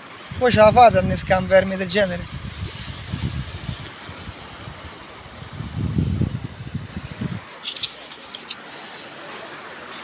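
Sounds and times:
wind buffeting microphone: 0.3s - 7.6s
faint hiss: 1.8s - 10.0s.

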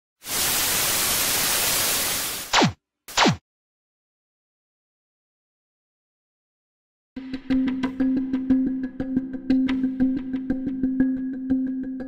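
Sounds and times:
television static hiss: 0.3s - 2.5s.

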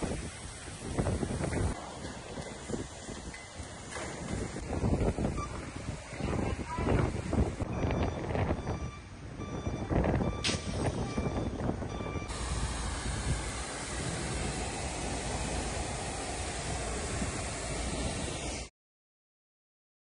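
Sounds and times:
fire hose jet hissing: 0.0s - 7.6s, 12.3s - 18.7s
large fire crackling: 0.0s - 7.7s, 10.5s - 18.6s.

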